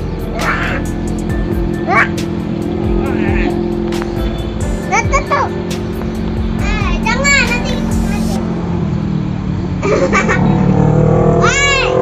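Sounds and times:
child calling: 0.3s - 1.0s, 1.8s - 2.2s, 6.6s - 8.4s, 11.4s - 12.0s.

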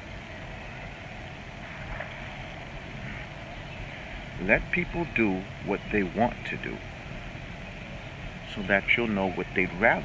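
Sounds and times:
low background rumble: 0.0s - 10.0s.

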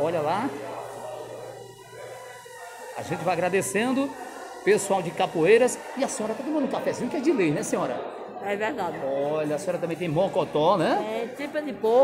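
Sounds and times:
indoor market hubbub: 0.0s - 12.0s.

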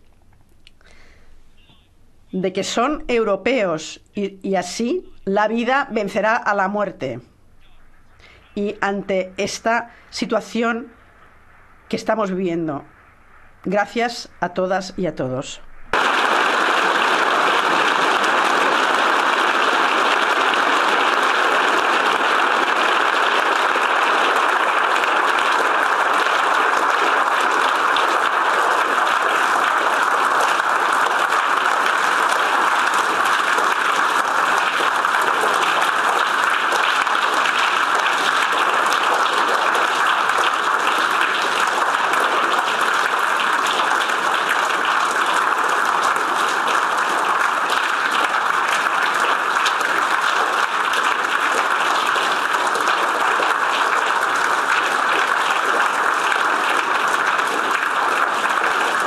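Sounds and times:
large audience applauding: 0.8s - 1.7s, 7.6s - 8.8s, 15.9s - 59.0s.

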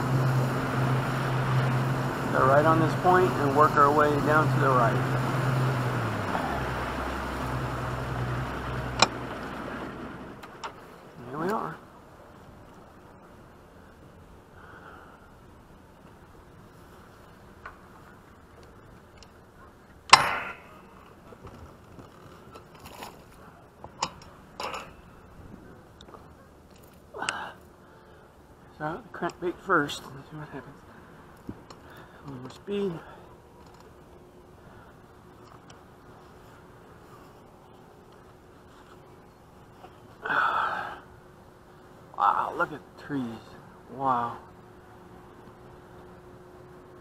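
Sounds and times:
outboard motor: 0.0s - 11.7s
trolling motor clicks and clunks: 0.0s - 11.7s, 17.4s - 27.4s, 29.1s - 30.2s.

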